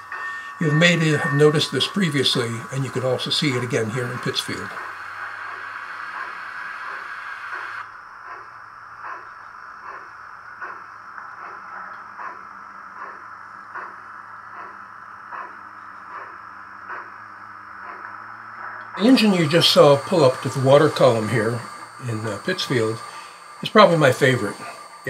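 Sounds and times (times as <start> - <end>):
model steam locomotive chuffing: 0.0 - 25.0
steady steam hiss: 0.0 - 25.0.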